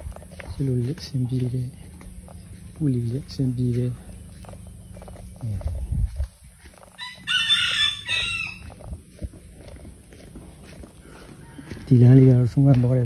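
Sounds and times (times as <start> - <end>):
rooster crowing: 6.7 - 9.7, 10.6 - 12.5.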